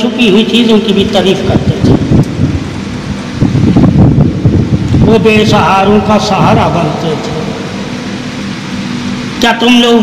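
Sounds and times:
wind buffeting microphone: 1.4 - 7.0.

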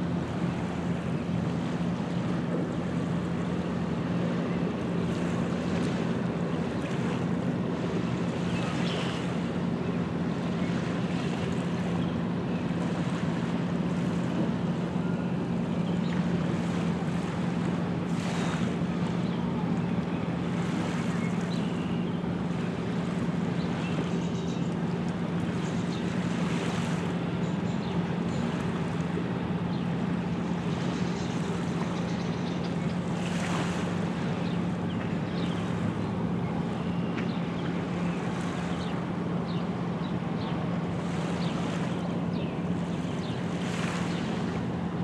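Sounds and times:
waves lapping on stony shore: 0.0 - 45.0.

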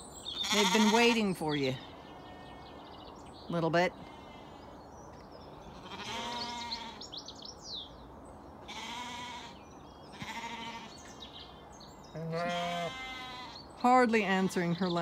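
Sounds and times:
bird chirping: 0.0 - 15.0
lambs bleating: 0.4 - 1.2, 4.1 - 4.6, 5.7 - 7.0, 8.7 - 10.9, 12.2 - 13.6.

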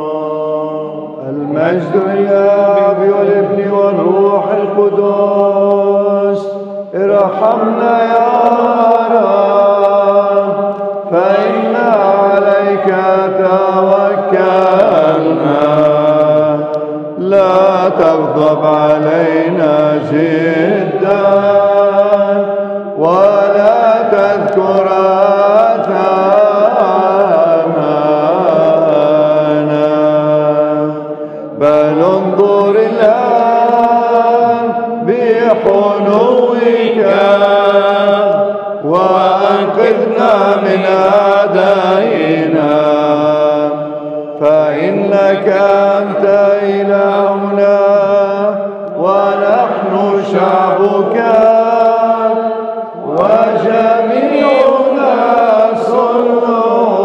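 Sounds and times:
man chanting solo: 0.0 - 31.0.

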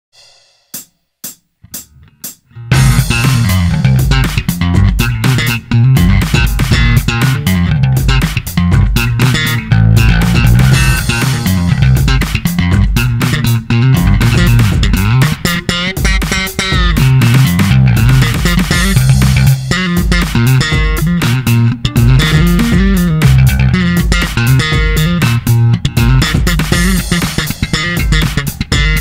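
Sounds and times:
drums: 0.1 - 29.0
slapped electric bass: 1.6 - 29.0.

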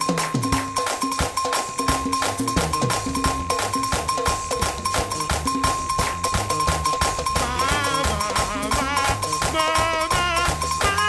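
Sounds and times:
fast even percussion: 0.0 - 11.0
moving bass line: 2.6 - 11.0.

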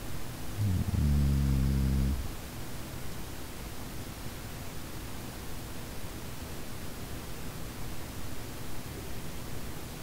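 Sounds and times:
man humming: 0.6 - 2.4.

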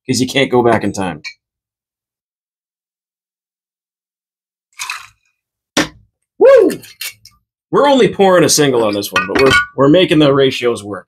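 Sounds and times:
liquid splashing into metal tin: 4.7 - 5.9.

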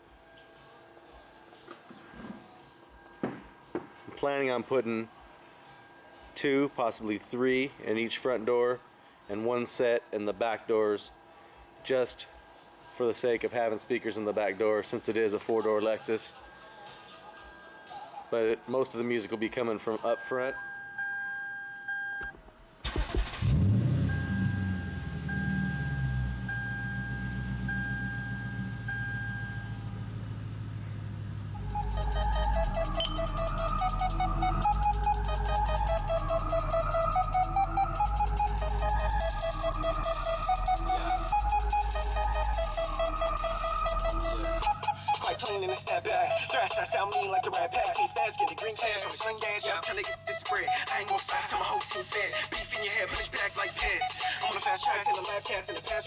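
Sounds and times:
car engine starting and idling: 22.8 - 44.7
two-note dashboard warning chime: 23.9 - 30.1, 31.6 - 43.9
faint steady tones: 24.1 - 48.2.

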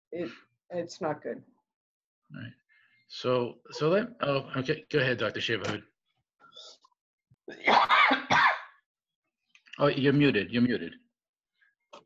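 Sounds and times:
person coughing: 7.5 - 8.7.

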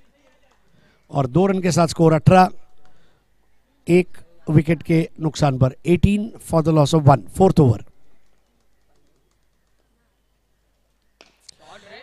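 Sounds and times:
faint bird calls: 7.9 - 11.8.

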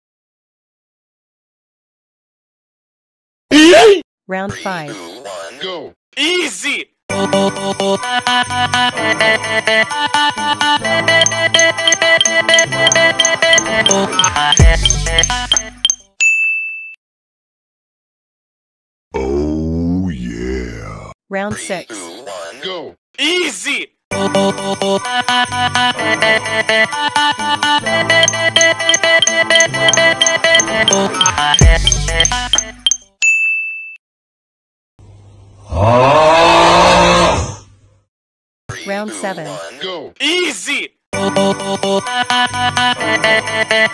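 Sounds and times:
high bell-like ding: 11.2 - 17.0, 28.2 - 34.0.

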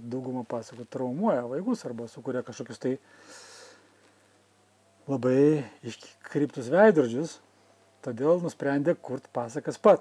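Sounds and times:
man breathing in: 3.0 - 4.3.

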